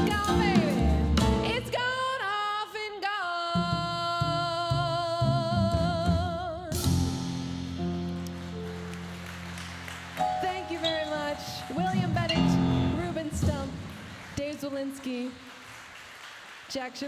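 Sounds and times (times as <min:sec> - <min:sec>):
woman singing: 0:00.0 - 0:06.9, 0:10.3 - 0:13.8
piano and double bass chord: 0:06.8 - 0:14.0.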